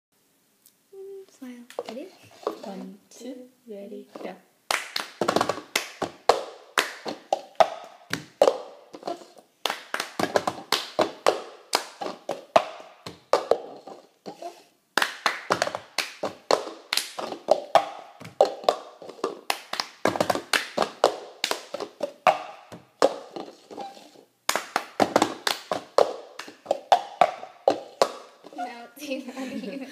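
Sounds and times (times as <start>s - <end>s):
taps on plastic cups: 4.2s - 28.6s
hand claps: 4.7s - 13.8s, 15.0s - 23.4s, 24.5s - 28.5s.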